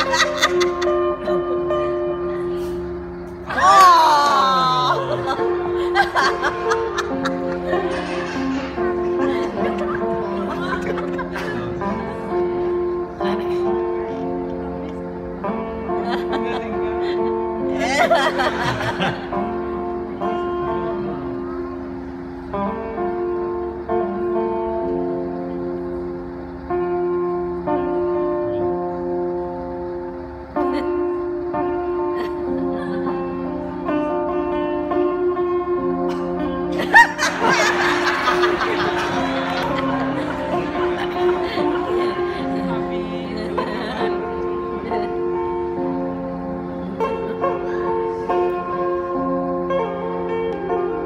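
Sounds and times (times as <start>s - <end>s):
people laughing hard: 0.0s - 1.4s, 3.5s - 12.4s, 15.9s - 19.8s, 32.0s - 33.5s, 36.7s - 45.9s
plucked-string background music: 5.0s - 51.0s.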